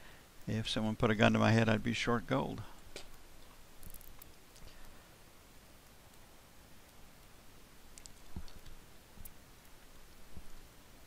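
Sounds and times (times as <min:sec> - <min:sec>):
quiet sharp clicks: 0:07.9 - 0:09.4.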